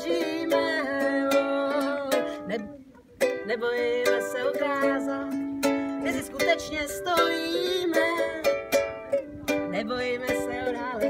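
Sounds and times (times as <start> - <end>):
ukulele strumming: 0.0 - 11.0
woman singing: 0.0 - 11.0.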